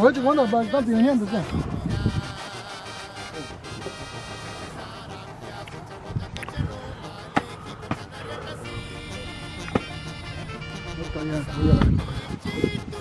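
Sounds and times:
background music with held notes: 0.0 - 13.0.

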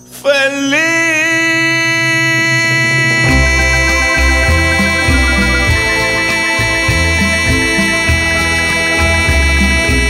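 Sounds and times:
man singing a held note: 0.2 - 7.5
low sustained accompaniment: 0.9 - 10.0.

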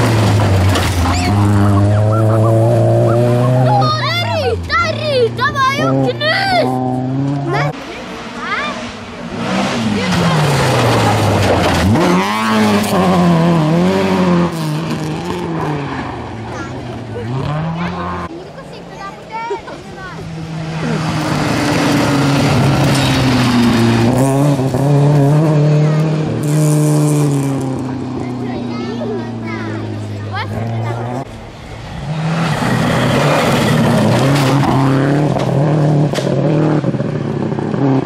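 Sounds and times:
rally car engine revving: 0.0 - 38.0.

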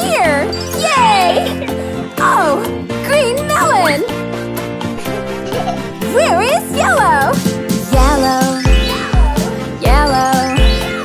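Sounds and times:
cheerful cartoon music: 0.0 - 11.0
tinkling chime: 0.4 - 1.6.

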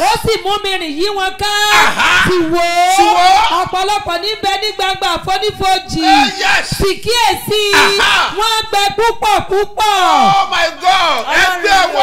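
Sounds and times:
man shouting and chanting: 0.0 - 12.0.

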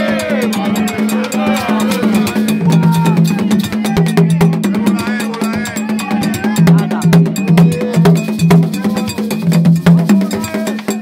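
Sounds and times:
hand drums in fast rhythm: 0.0 - 11.0.

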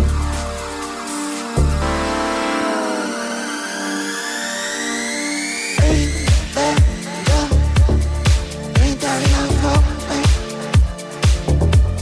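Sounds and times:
rising synth sweep: 0.0 - 8.3
held synth chords: 0.0 - 12.0.

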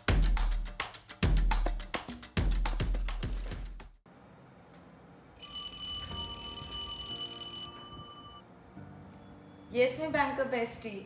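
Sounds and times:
mobile phone ringing: 5.4 - 8.4.

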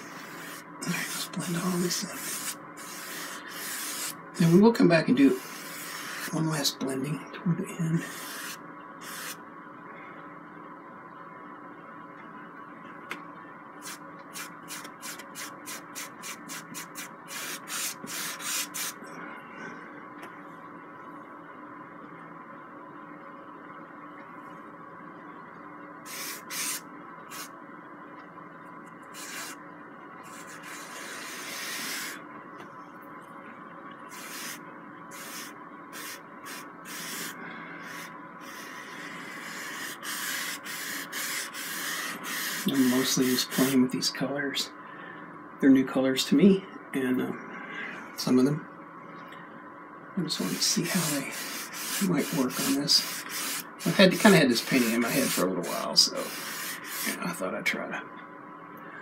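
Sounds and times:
paintbrush strokes on canvas: 0.0 - 4.2, 34.1 - 43.8, 50.4 - 57.2.

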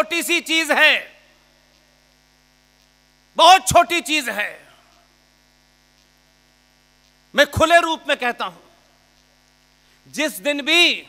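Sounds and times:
faint electrical hum: 0.0 - 11.0
man's voice: 3.4 - 4.8, 7.4 - 8.7, 10.1 - 11.0.

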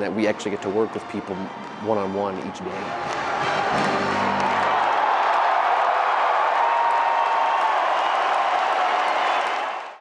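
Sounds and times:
crowd cheering and applauding: 0.0 - 10.0.

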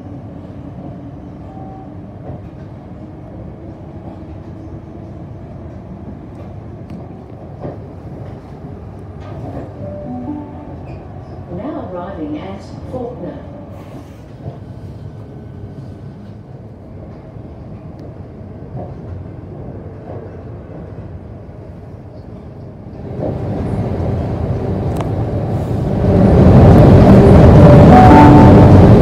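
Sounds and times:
train wheels rumbling on track: 0.0 - 9.9, 10.8 - 29.0.

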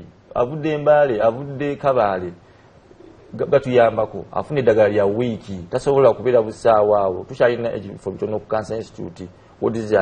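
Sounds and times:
man speaking: 0.0 - 2.4, 3.2 - 10.0.

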